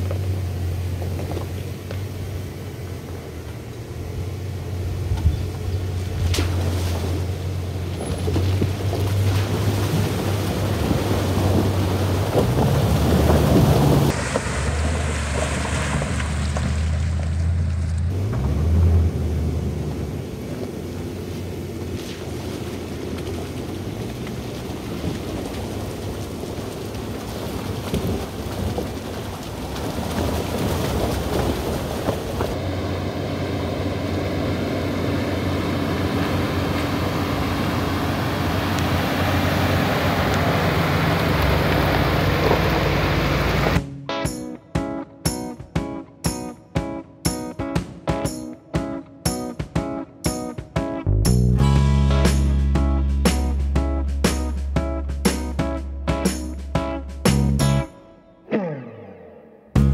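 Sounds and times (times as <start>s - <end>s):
tyres on gravel: 0.0s - 19.2s, 19.8s - 43.8s
truck engine revving: 7.1s - 26.4s, 30.1s - 43.8s, 58.5s - 59.9s.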